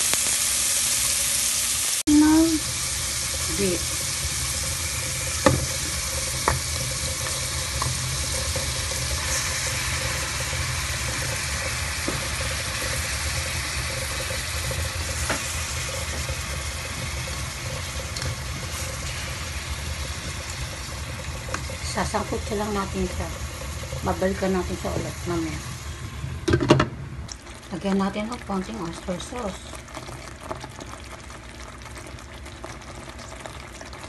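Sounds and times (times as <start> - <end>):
food sizzling in oil: 0.0 - 26.4.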